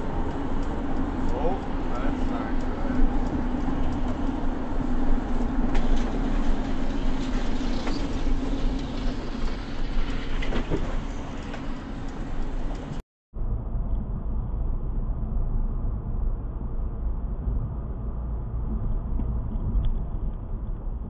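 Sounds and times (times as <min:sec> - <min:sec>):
vehicle road and engine noise: 0:00.0 - 0:21.0.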